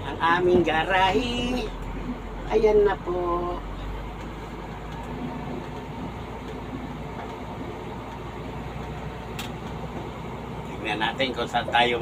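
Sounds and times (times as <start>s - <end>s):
vehicle engine and road noise: 0.0s - 12.0s.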